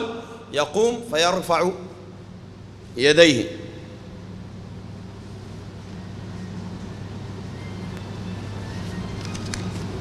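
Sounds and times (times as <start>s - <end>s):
constant background hiss: 0.0s - 10.0s
steady low hum: 0.0s - 10.0s.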